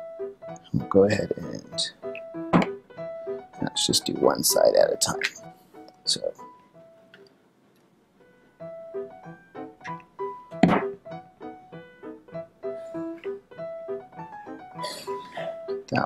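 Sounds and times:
light background music: 0.0 - 7.4, 8.2 - 16.0.

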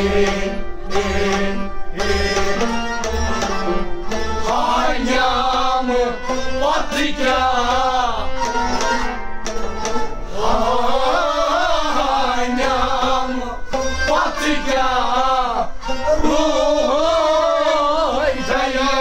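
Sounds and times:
men singing folk song: 0.0 - 2.8, 4.1 - 19.0.

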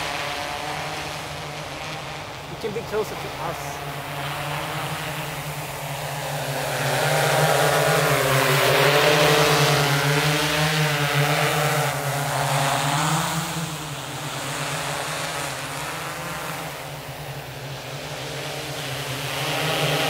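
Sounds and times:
drone propellers humming: 0.0 - 20.0.

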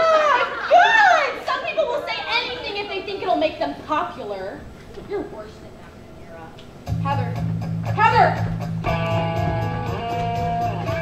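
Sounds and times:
young voices talking and calling: 0.0 - 6.0.

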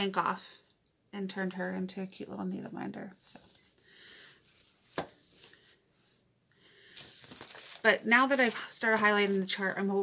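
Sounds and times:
paper rustling: 6.9 - 9.6.

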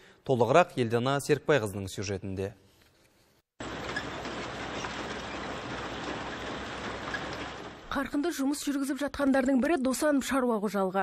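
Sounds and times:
harvester machine running: 3.6 - 8.0.

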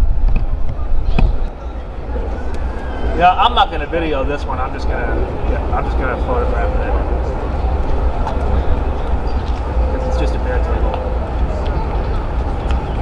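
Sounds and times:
people talking: 0.7 - 7.4, 9.6 - 12.0.

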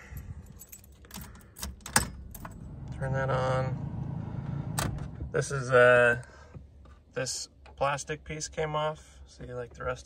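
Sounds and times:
car keys clinking: 0.0 - 2.7
key clicking into ignition lock: 0.5 - 2.6.

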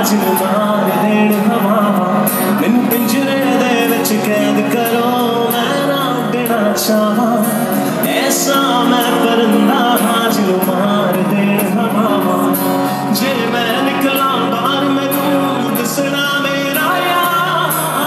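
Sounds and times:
acoustic guitar: 0.0 - 18.0
man singing: 0.0 - 18.0.

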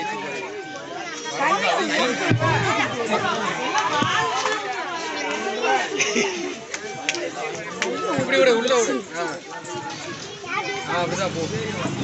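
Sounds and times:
voices chattering and calling out: 0.0 - 12.0.

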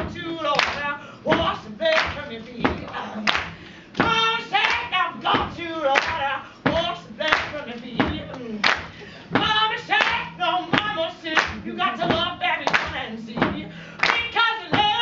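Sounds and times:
woman singing: 0.0 - 15.0
hand claps: 0.5 - 15.0.

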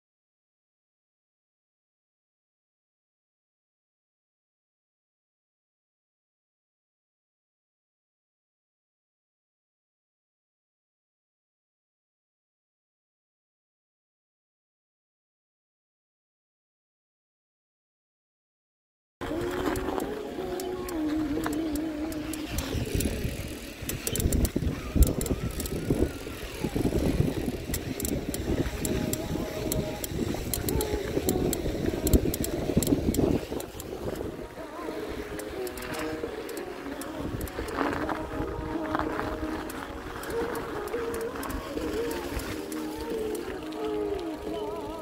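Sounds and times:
background music with wavering notes: 19.2 - 45.0
wind rumble on microphone: 19.2 - 45.0.

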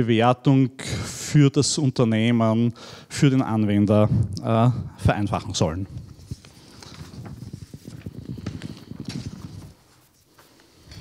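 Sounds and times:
paper shuffling: 5.9 - 11.0.

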